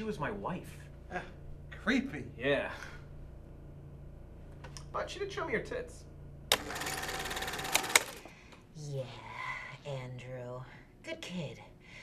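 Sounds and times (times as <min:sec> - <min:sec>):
mechanical buzzing clatter: 0:06.5 - 0:08.3.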